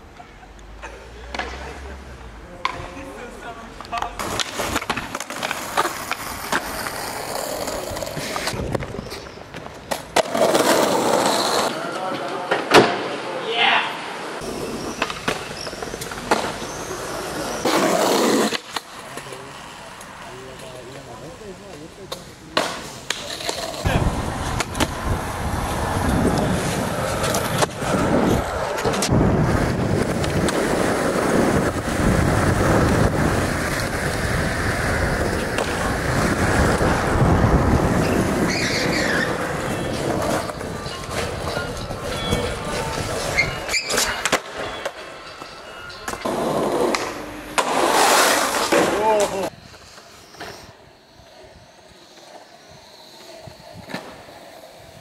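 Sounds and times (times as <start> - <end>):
skateboard wheels rolling on concrete: 0.0 - 55.0
skateboard clacks popping and landing: 3.9 - 7.0.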